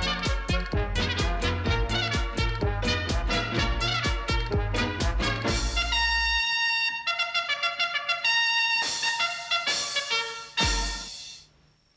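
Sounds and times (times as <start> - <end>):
brass chords: 0.0 - 11.4
trumpet playing quick notes: 0.0 - 11.4.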